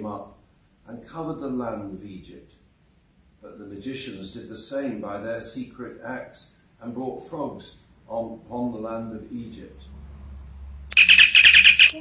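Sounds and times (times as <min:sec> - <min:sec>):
high-pitched chirping trill: 0:10.9 - 0:12.0.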